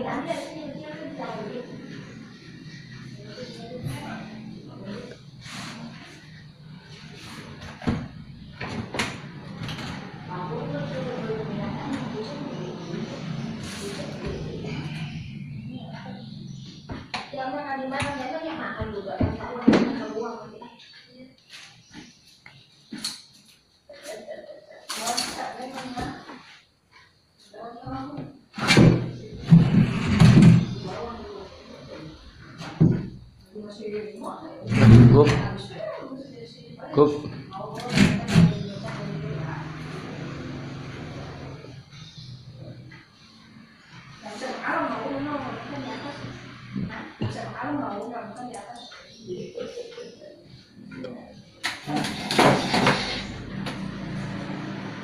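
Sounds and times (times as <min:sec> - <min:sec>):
voices: 0:00.0 - 0:23.1, 0:23.8 - 0:26.6, 0:27.4 - 0:55.0.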